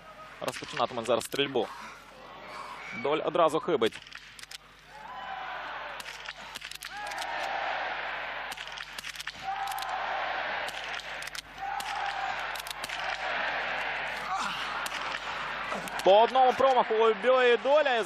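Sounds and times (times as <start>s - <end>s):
crowd cheering and calling out: 4.9s - 18.0s.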